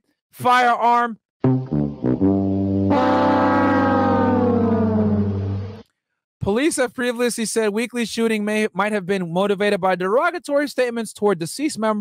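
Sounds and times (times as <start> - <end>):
sad trombone sliding down: 1.5 - 5.8
steady low tone: 2.9 - 5.8.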